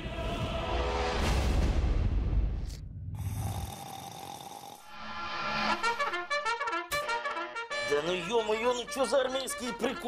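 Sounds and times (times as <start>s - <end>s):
man snoring: 3.2s - 4.9s.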